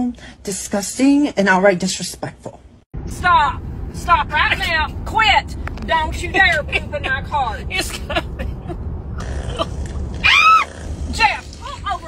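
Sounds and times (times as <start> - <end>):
person squealing: 9.6 - 10.8.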